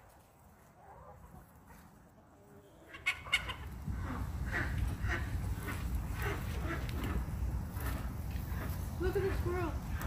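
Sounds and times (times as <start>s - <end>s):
hens clucking: 2.2s - 10.0s.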